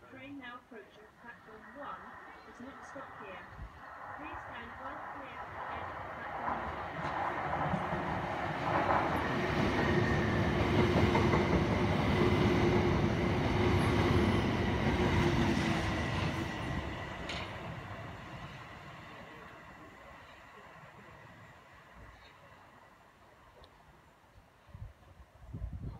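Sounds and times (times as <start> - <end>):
train wheels rushing on rail: 1.4 - 23.3.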